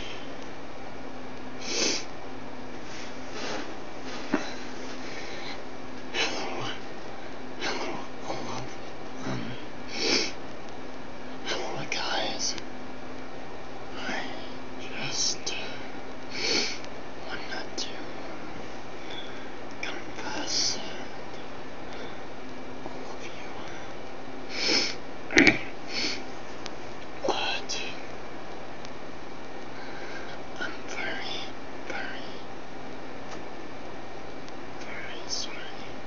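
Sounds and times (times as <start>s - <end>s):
low hum and hiss: 0.0s - 36.0s
man whispering: 6.1s - 6.9s, 7.6s - 9.7s, 11.4s - 12.6s, 13.9s - 16.0s, 17.2s - 18.2s, 19.8s - 21.2s, 23.0s - 23.9s, 27.2s - 28.1s, 30.6s - 32.5s, 34.8s - 36.0s.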